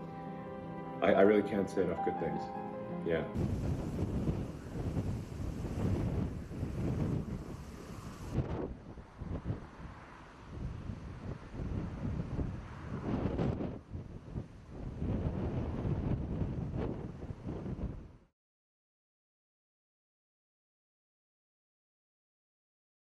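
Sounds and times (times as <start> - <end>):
wind buffeting microphone: 3.4 - 18.3.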